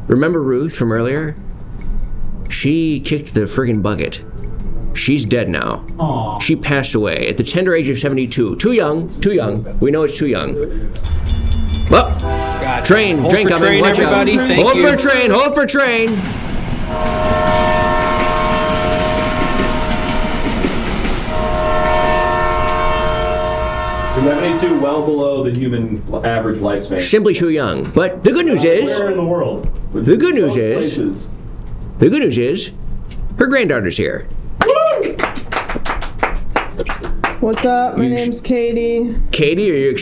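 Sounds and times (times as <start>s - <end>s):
passing train rumbling: 0.9s - 27.1s
train horn blasts: 11.9s - 15.2s, 16.8s - 25.5s
hands clapping quickly: 34.6s - 37.8s.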